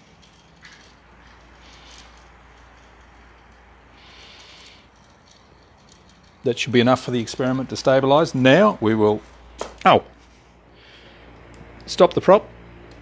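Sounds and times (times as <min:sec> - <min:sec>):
electric fan humming: 0:00.0 - 0:13.0.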